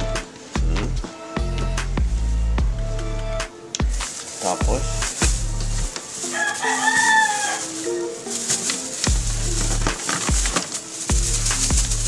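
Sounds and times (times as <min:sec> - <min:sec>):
background music with bass line: 0:00.0 - 0:06.0, 0:09.0 - 0:12.0
rooster crowing: 0:06.2 - 0:08.2.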